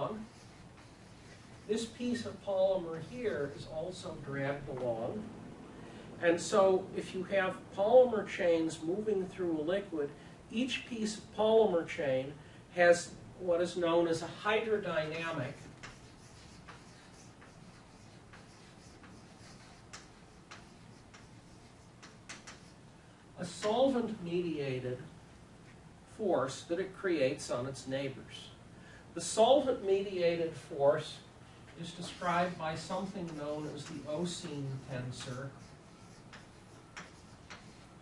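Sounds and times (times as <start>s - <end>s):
chalk clicking on blackboard: 15.6s - 22.8s, 33.0s - 38.0s.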